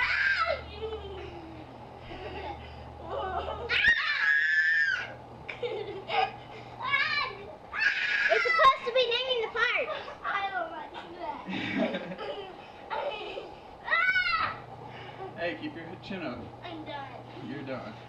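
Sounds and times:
girl high-pitched shrieks: 0.0s - 0.6s, 3.7s - 5.1s, 7.7s - 8.7s, 13.9s - 14.6s
girl squealing and giggling: 0.0s - 1.4s, 3.2s - 5.1s, 7.7s - 8.8s.

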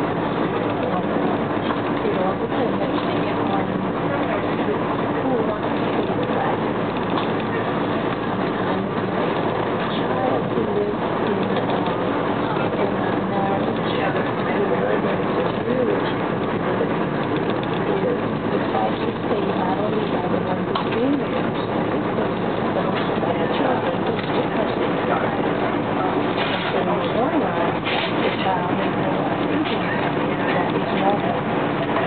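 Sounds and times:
faint voices: 0.0s - 32.0s.

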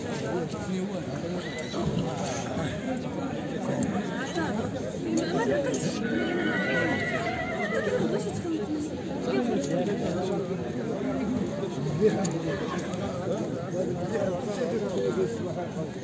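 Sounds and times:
men chattering: 0.0s - 16.0s
horse whinnying: 6.0s - 8.1s.

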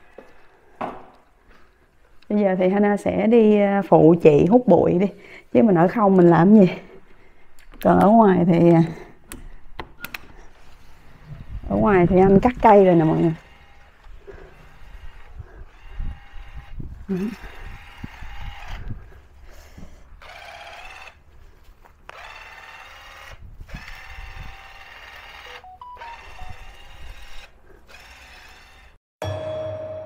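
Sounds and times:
motorised cutting tool buzzing: 12.4s - 19.0s, 20.2s - 21.2s, 22.1s - 29.0s.

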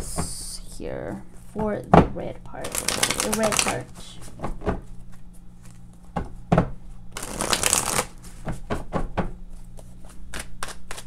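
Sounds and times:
cards shuffling: 2.6s - 6.0s, 7.2s - 8.6s, 9.5s - 11.0s.

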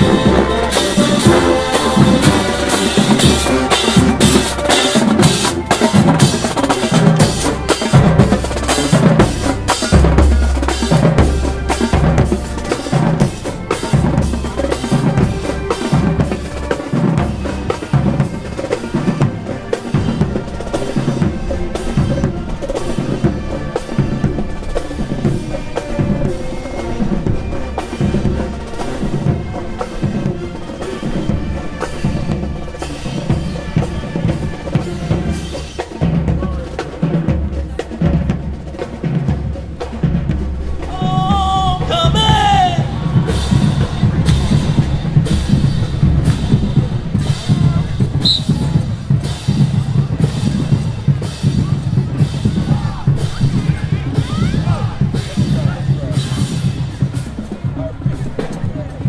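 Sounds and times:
bass drum: 0.0s - 59.0s
snare drums: 0.0s - 59.0s.

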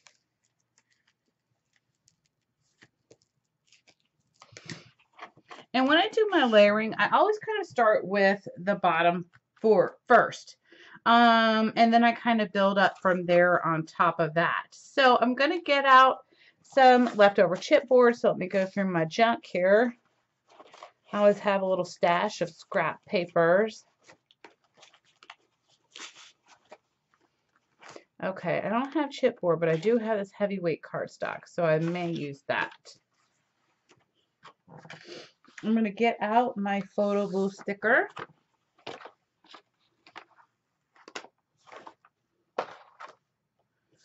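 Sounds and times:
paper rustling and tapping: 0.0s - 6.2s, 23.9s - 28.1s, 36.8s - 43.3s.

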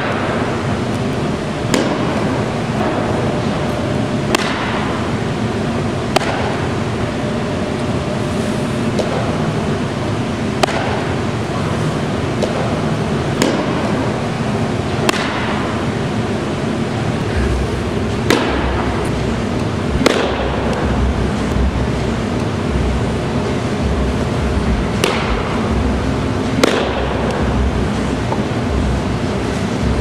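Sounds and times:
loud rushing background: 0.0s - 30.0s.

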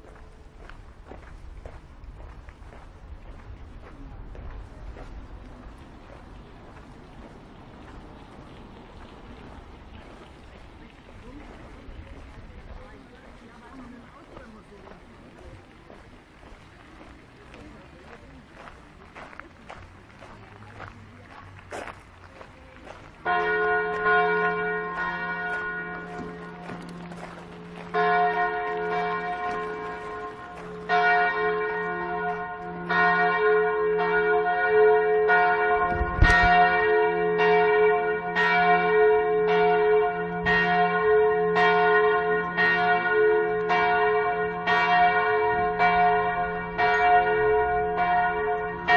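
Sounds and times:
church bells ringing: 23.2s - 48.9s.

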